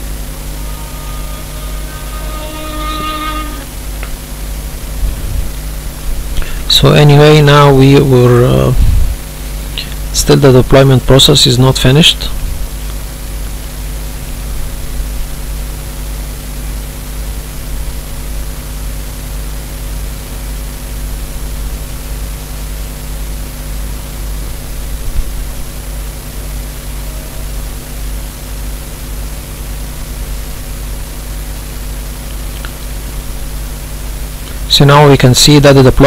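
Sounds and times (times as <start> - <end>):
low hum: 0.0 - 11.2
faint high whine: 0.0 - 36.0.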